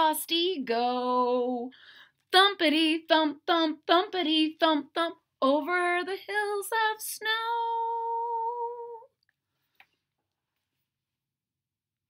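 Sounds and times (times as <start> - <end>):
woman singing a steady note: 2.4 - 9.1.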